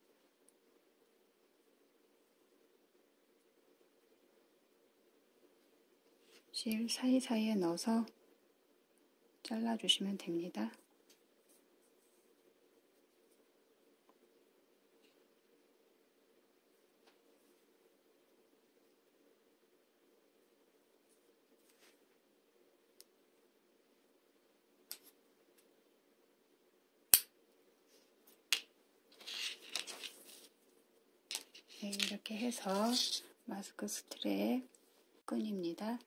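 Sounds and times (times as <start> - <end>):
faint soft scratching of thread: 5.6 - 6.9, 10.8 - 13.6, 21.0 - 22.3, 29.1 - 35.3
yarn rustling: 29.1 - 30.6, 31.3 - 33.4.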